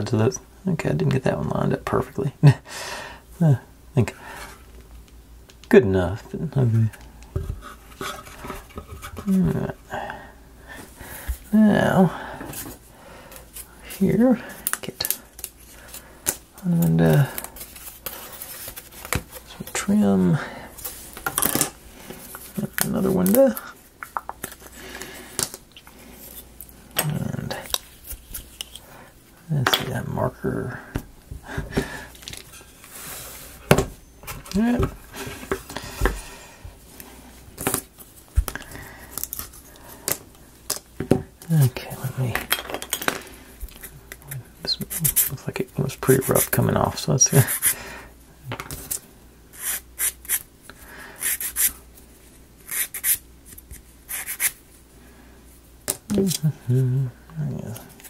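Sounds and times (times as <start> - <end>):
small parts and tools clattering: 42.3 - 43.2
man muttering: 56.1 - 57.8.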